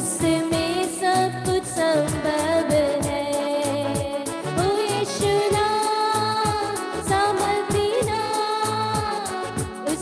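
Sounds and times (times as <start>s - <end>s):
electronic keyboard bass notes: 0.0s - 10.0s
steady drum beat: 0.0s - 10.0s
woman singing into a microphone: 0.0s - 10.0s.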